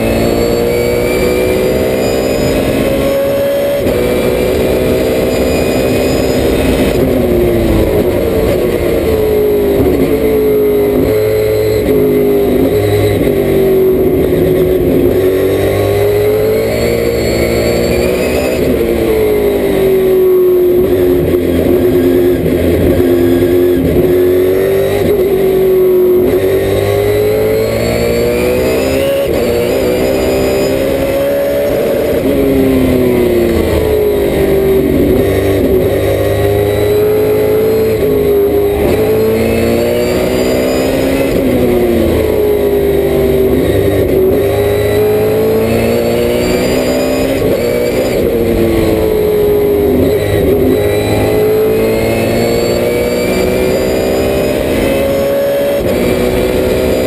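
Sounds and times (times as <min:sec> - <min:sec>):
race car engine revving: 0:00.0 - 0:57.0
wind and road noise: 0:00.0 - 0:57.0.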